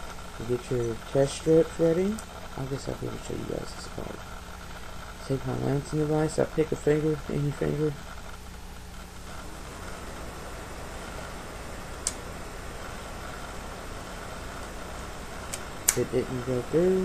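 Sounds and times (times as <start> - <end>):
low room hum: 0.0 - 17.0
lancing device clicking: 12.0 - 12.3, 15.4 - 16.1.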